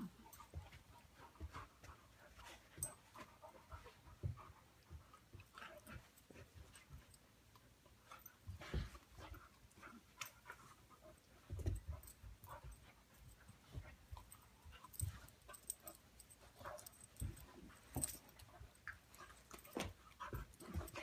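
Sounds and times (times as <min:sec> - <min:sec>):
dogs panting: 0:00.0 - 0:21.0
soft thumps and clicks: 0:11.2 - 0:21.0.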